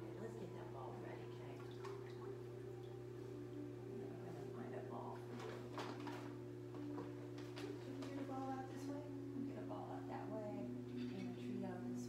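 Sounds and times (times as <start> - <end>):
background music: 0.0 - 12.0
steady low hum: 0.0 - 12.0
dog splashing water: 1.4 - 2.4.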